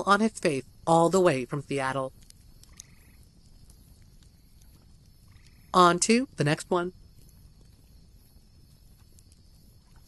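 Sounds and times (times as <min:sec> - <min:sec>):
faint low rumble: 0:00.0 - 0:10.0
soft ticks: 0:02.1 - 0:05.8.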